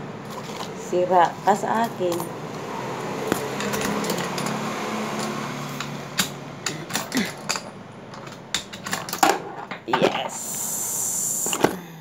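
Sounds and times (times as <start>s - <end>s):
arcade machine humming: 0.0s - 11.8s
coins clicking and clinking: 0.2s - 0.8s, 3.3s - 9.8s.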